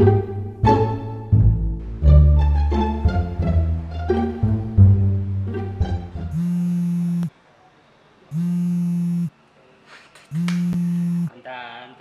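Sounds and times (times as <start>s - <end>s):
phone vibrating on a counter: 6.3s - 7.3s, 8.4s - 9.3s, 10.3s - 11.3s.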